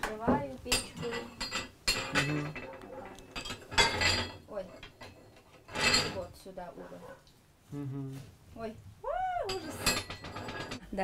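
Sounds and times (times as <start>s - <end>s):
cast iron rings clanking: 0.0s - 6.5s, 9.4s - 11.0s.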